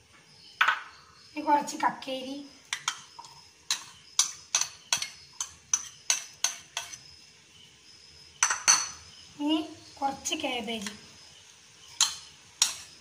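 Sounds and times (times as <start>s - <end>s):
metal spoon clinking ceramic bowl: 3.7s - 7.0s, 8.4s - 9.0s, 12.0s - 12.9s.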